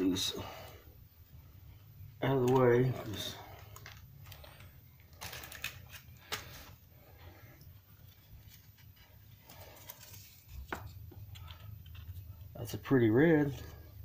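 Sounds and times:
metal leaf sheets crinkling: 2.2s - 6.8s, 8.0s - 14.0s.

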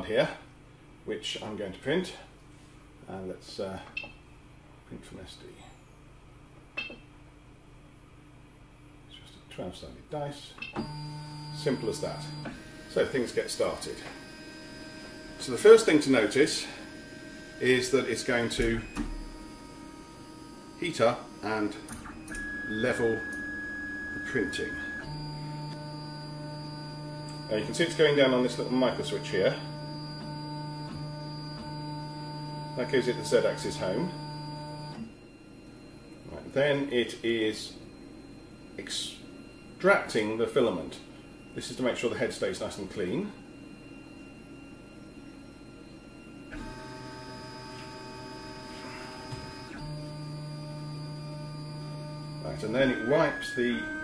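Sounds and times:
printer motors and fan whining: 10.8s - 54.0s.

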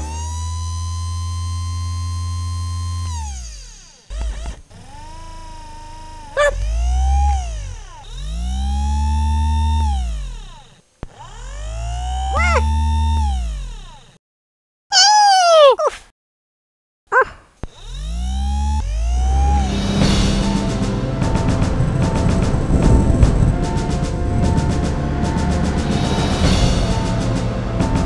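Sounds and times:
electronic servo whirring: 0.0s - 14.2s, 17.6s - 20.2s
deep hum: 4.1s - 10.6s, 17.9s - 28.0s.

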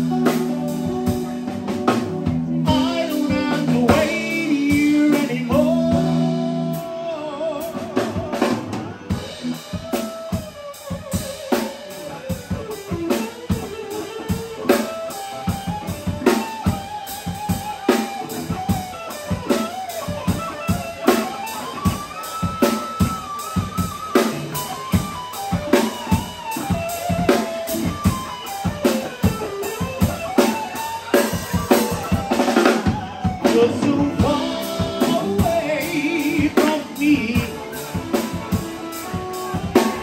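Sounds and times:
drum kit beat: 0.0s - 40.0s
electric guitar: 0.0s - 40.0s.

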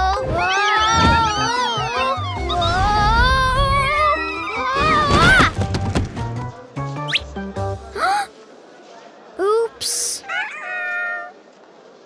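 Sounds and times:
cartoon cat-like cry: 0.0s - 5.5s, 10.2s - 11.3s.

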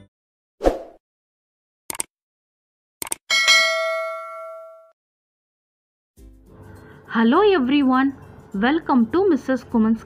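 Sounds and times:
bell ding: 3.3s - 5.0s.

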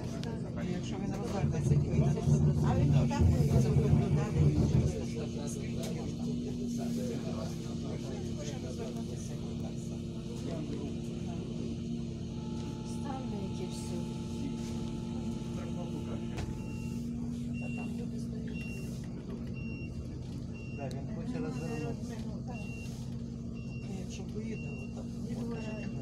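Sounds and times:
bus diesel engine idling: 0.0s - 26.0s.

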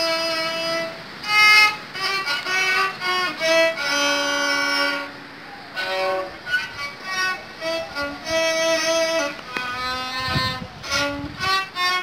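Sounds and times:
bowed solo violin: 0.0s - 12.0s.

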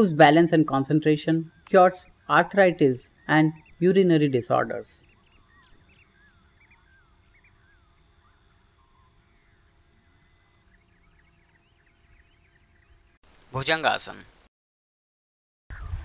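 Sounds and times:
faint birds chirping: 0.0s - 13.2s.

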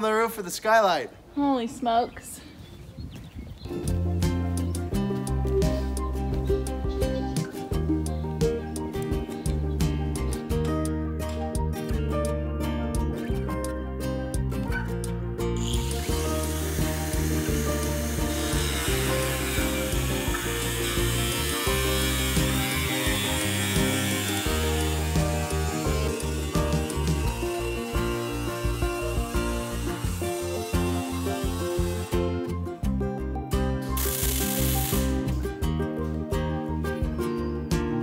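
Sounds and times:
background music: 3.7s - 38.0s
power tool grinding steel: 15.6s - 32.4s, 34.0s - 35.2s.

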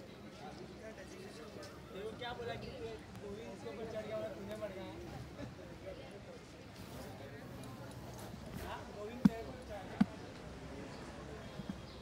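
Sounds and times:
low crowd chatter: 0.0s - 12.0s.

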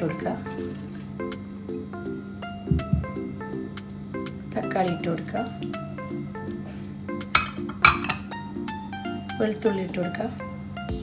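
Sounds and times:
background music: 0.0s - 11.0s
glass bowl clinking on metal: 7.3s - 8.4s.

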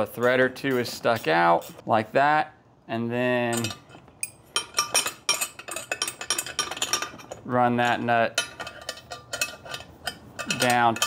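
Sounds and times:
wrenches clinking on metal: 3.4s - 11.0s.

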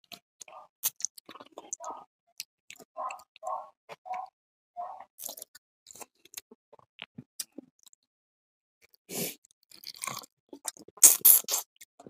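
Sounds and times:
chewing and crunching: 0.0s - 8.1s, 8.8s - 12.0s.

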